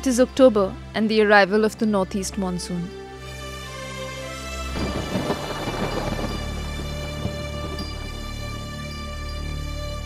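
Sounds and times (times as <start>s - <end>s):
background music with held notes: 0.0s - 10.0s
thunder crashing and rumbling: 4.8s - 8.7s.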